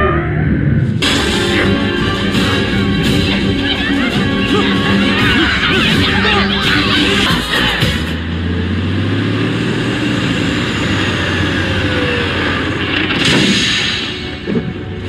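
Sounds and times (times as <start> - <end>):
film music and effects: 0.0 - 15.0
orchestral score: 1.0 - 8.4
idling truck engines hum: 1.0 - 13.2
loud rush of sound: 9.7 - 15.0.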